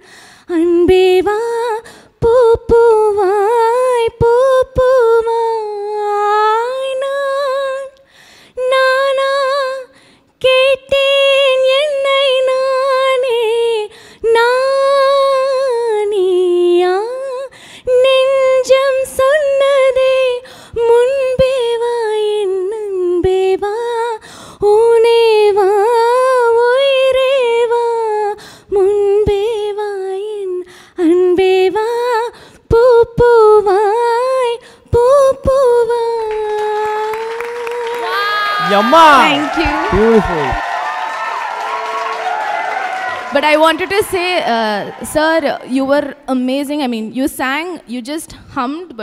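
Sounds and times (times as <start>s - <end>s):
woman singing unaccompanied: 0.5s - 8.0s, 8.6s - 39.6s.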